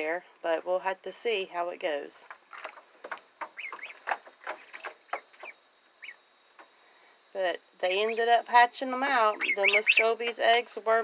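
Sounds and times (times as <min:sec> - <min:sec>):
ducklings peeping: 0:03.1 - 0:06.2, 0:07.8 - 0:11.0.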